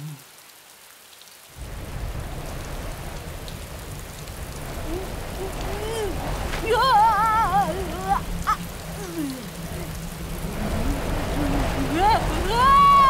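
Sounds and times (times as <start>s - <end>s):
rain: 0.0s - 13.0s.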